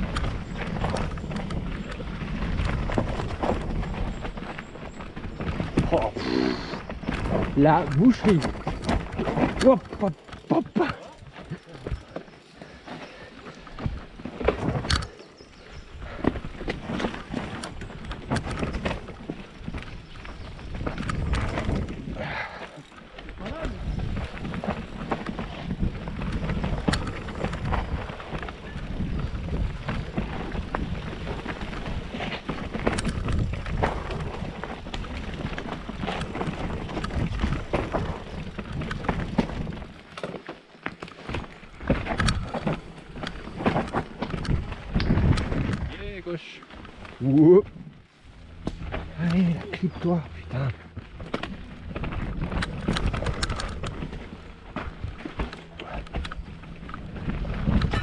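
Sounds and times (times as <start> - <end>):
bike frame and chain rattling: 0.0 - 47.6, 51.0 - 58.0
bike tyres rumbling over dirt: 0.0 - 58.0.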